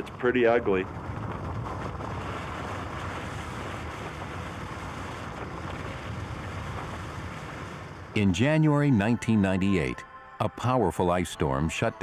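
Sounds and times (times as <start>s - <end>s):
low rumble: 0.0s - 8.2s.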